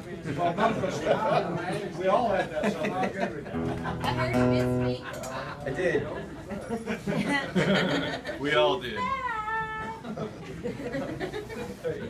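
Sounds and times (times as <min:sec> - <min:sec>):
low murmur of voices: 0:00.0 - 0:12.0.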